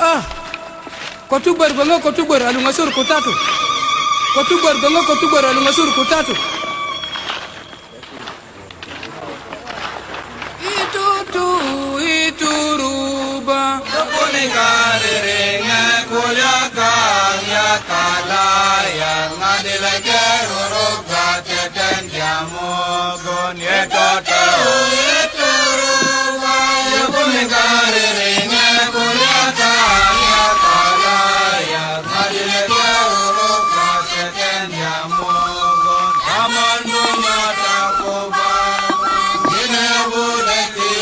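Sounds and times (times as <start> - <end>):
indistinct voices: 0.0 - 41.0
chanted song with held vocal notes: 2.0 - 7.7, 10.6 - 41.0
man singing: 4.3 - 6.7, 10.6 - 19.5, 20.1 - 41.0.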